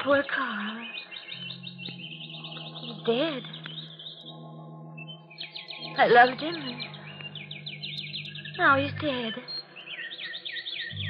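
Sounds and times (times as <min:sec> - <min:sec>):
caged birds twittering: 0:00.0 - 0:11.0
low steady hum: 0:05.8 - 0:09.8.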